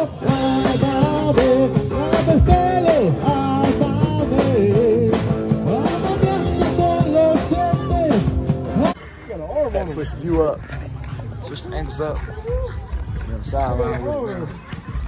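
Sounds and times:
person singing into microphone: 0.0 - 8.9
drum kit: 0.0 - 9.0
electric guitar: 0.0 - 9.0.

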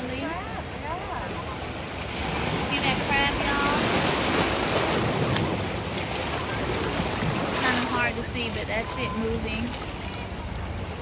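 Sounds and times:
sea waves washing over rocks: 0.0 - 11.0
wind rumbling on microphone: 0.0 - 11.0.

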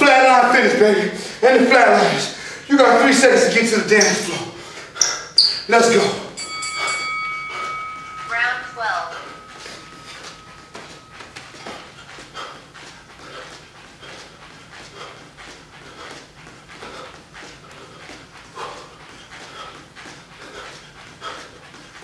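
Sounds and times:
man panting: 0.2 - 5.6, 6.2 - 8.3, 9.1 - 22.0.

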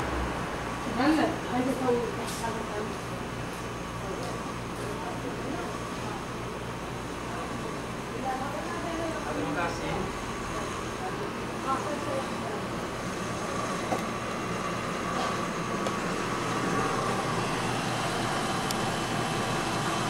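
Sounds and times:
steady background noise: 0.0 - 20.0.

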